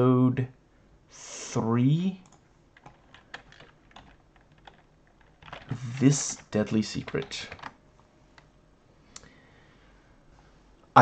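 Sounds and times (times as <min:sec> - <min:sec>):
man's voice: 0:05.7 - 0:07.5.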